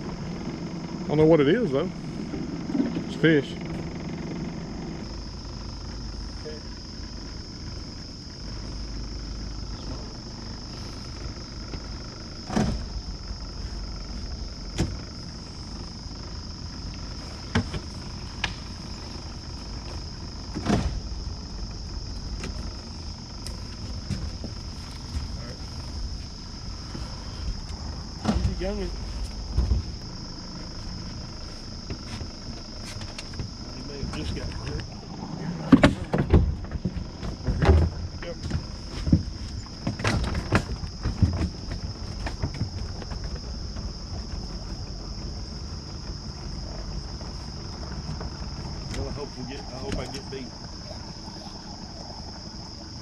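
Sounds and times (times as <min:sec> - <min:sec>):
electric trolling motor running: 0:00.0 - 0:53.0.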